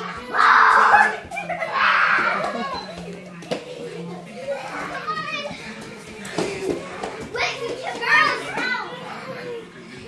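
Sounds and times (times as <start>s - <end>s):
children calling out: 0.0s - 3.0s.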